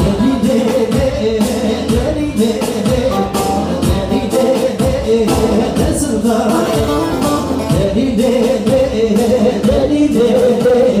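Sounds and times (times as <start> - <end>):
amplified band with steady beat: 0.0 - 11.0
person singing: 0.0 - 11.0.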